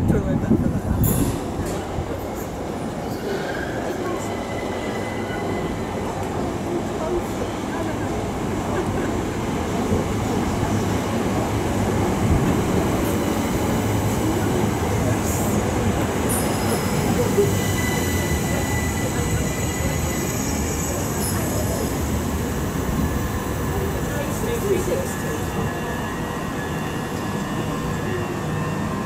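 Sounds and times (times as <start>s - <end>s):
train wheels rumbling on rail: 0.0s - 29.0s
high squeals from brakes: 3.0s - 6.2s, 16.2s - 22.1s.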